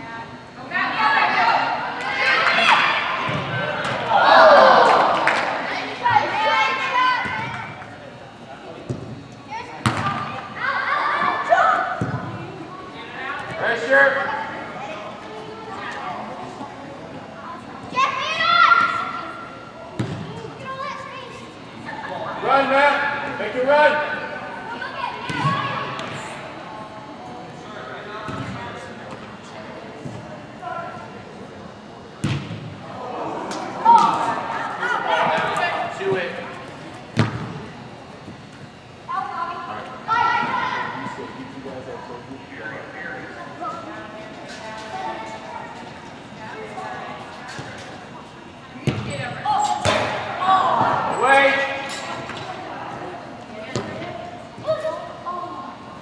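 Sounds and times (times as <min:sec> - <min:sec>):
players and spectators shouting: 0:00.7 - 0:07.8, 0:32.8 - 0:36.5, 0:49.4 - 0:51.9
ball kicked thudding: 0:32.2 - 0:32.7, 0:37.2 - 0:37.6, 0:48.8 - 0:49.2.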